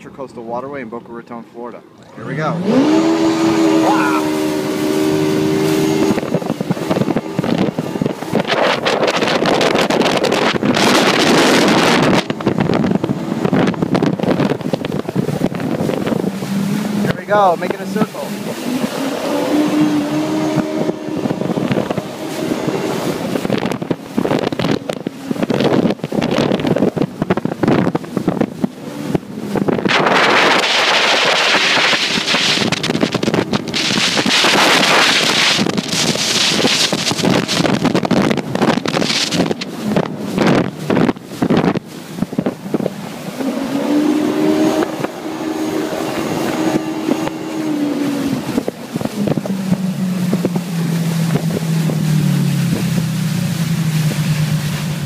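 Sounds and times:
personal watercraft engine: 0:00.0 - 0:55.0
wind buffeting on microphone: 0:02.2 - 0:55.0
rushing water spray: 0:02.5 - 0:55.0.

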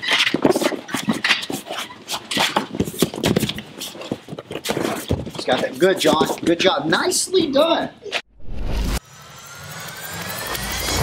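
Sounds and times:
bodies and feet scuffling: 0:00.0 - 0:07.9.

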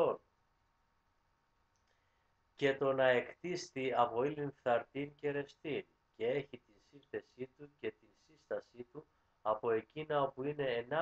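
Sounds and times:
man speaking: 0:00.0 - 0:00.2, 0:02.6 - 0:11.0
faint high room hum: 0:00.0 - 0:11.0.

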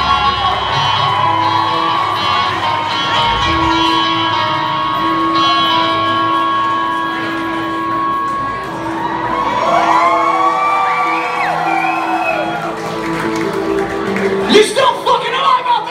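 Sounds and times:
crowd whooping and cheering: 0:00.0 - 0:05.4, 0:08.5 - 0:14.6
rock band sustained chord: 0:02.6 - 0:08.6.

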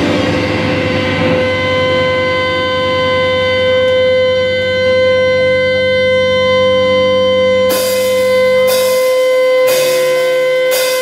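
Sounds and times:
guitar amp feedback tone: 0:00.0 - 0:11.0
band playing: 0:07.7 - 0:11.0.

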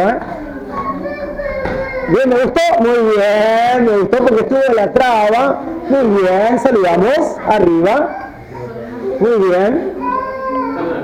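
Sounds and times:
low background talk: 0:00.0 - 0:11.0.

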